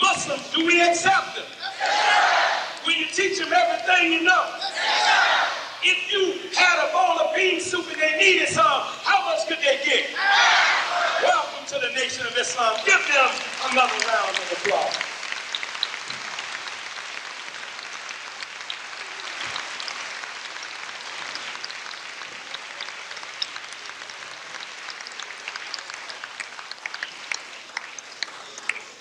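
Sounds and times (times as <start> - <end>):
audience applauding: 12.2 - 29.0.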